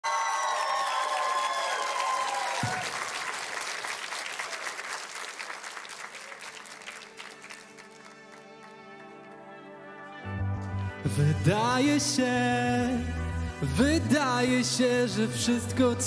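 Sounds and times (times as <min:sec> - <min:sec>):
studio audience applauding: 0:00.0 - 0:09.2.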